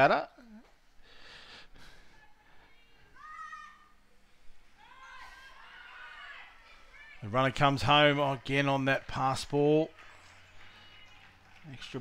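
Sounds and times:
girl shouting in distance: 3.1s - 3.9s.

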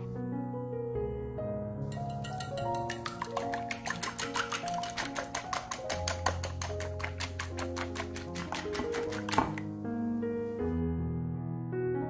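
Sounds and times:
background music: 0.0s - 12.0s
whisk clicking against glass: 1.9s - 9.6s.

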